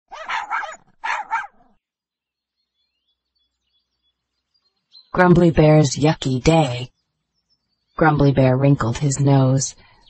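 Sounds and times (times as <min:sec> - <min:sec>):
dog barking: 0:00.1 - 0:01.7.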